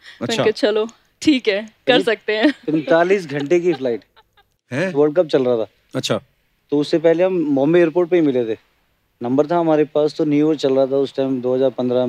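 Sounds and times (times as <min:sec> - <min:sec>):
man speaking: 0:00.2 - 0:00.5, 0:02.7 - 0:04.1, 0:04.7 - 0:08.6.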